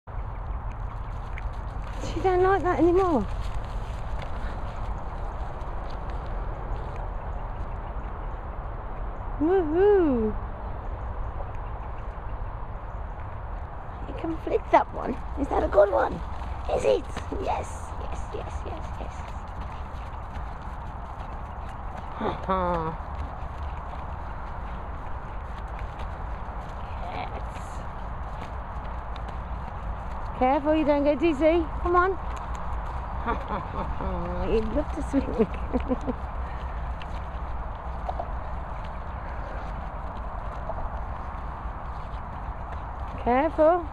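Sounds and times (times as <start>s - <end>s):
dog paws thudding on grass: 0.8s - 8.1s, 13.5s - 43.9s.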